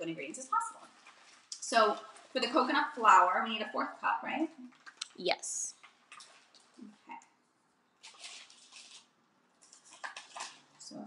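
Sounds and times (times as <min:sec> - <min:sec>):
plastic bag rustling: 0:08.0 - 0:11.0.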